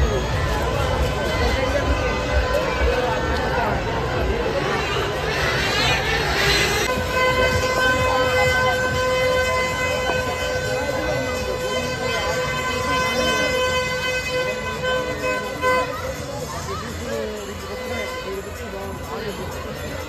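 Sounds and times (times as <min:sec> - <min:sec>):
crowd noise: 0:00.0 - 0:20.0
long steady horn tone: 0:00.0 - 0:20.0.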